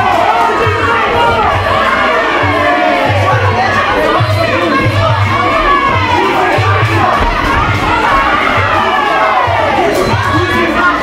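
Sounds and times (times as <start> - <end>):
crowd shouting and cheering: 0.0 - 11.0
music with low beat: 0.6 - 10.7.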